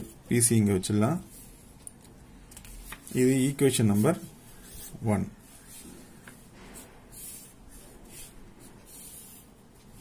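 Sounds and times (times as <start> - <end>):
pen scratching on paper: 3.9 - 10.0.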